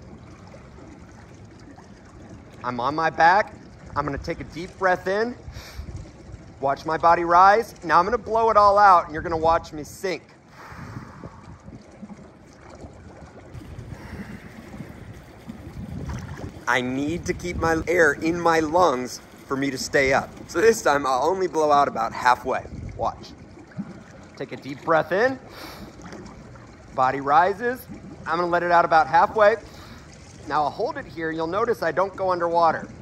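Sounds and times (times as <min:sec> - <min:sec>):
water sloshing in a pool: 0:00.0 - 0:33.0
wind rumble on microphone: 0:03.2 - 0:24.3.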